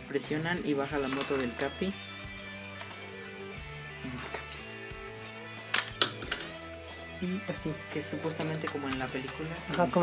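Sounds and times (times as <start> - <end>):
background music with held notes: 0.0 - 10.0
plastic toy clacking on table: 5.8 - 6.5.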